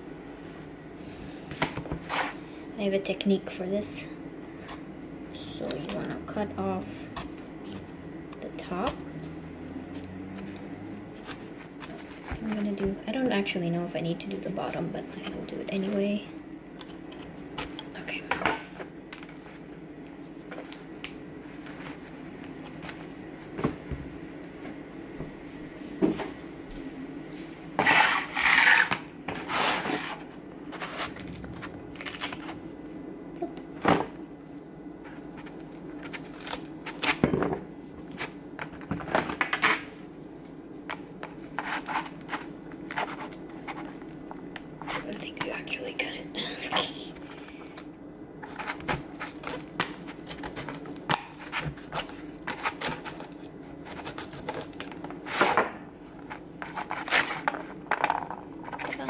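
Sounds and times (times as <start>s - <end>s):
steady low hum: 0.0s - 59.0s
rustling scrapes: 2.0s - 2.4s, 27.3s - 32.6s, 41.6s - 44.0s, 51.3s - 55.6s, 56.6s - 57.5s.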